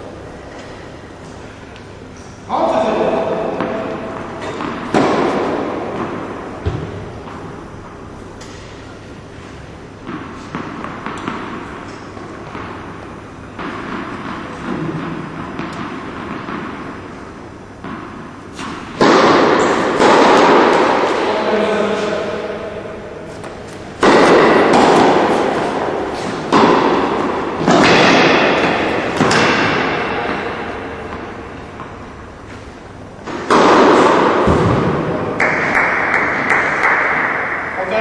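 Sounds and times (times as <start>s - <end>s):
echo in indoor hall: 0.0s - 38.0s
tennis ball hit by racket: 3.0s - 8.8s, 10.0s - 32.6s, 33.2s - 37.6s.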